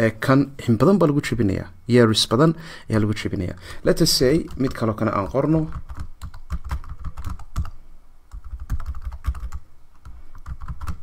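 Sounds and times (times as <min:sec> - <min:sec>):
computer keyboard typing: 0:04.3 - 0:11.0.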